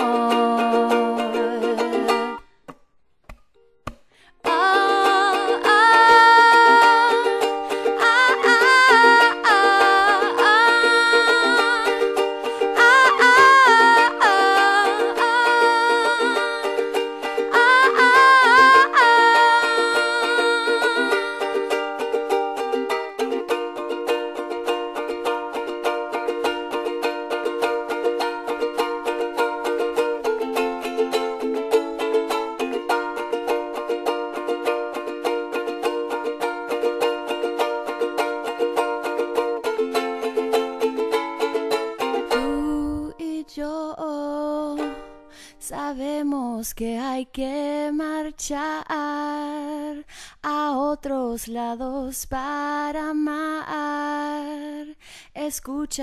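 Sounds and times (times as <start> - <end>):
woman singing: 0.0 - 2.4, 4.4 - 23.6, 42.0 - 56.0
ukulele strumming: 0.0 - 55.0.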